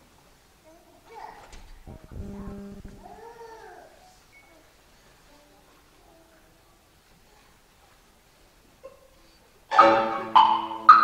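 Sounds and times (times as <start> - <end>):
person calling out: 2.0 - 3.8.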